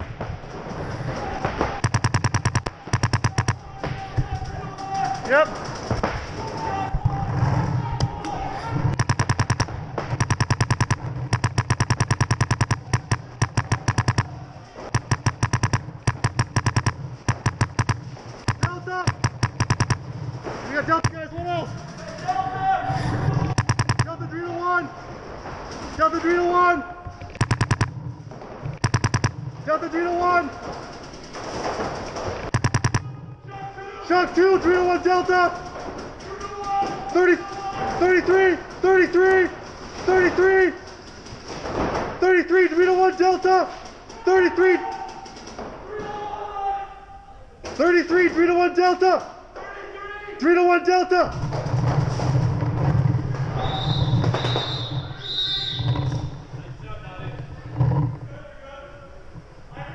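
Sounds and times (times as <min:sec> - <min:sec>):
players shouting: 0:01.0 - 0:20.0, 0:20.6 - 0:25.2, 0:32.6 - 0:40.8, 0:42.3 - 0:47.5
paintball markers firing: 0:01.5 - 0:04.4, 0:08.9 - 0:22.3, 0:23.4 - 0:24.2, 0:27.2 - 0:29.5, 0:30.5 - 0:33.1.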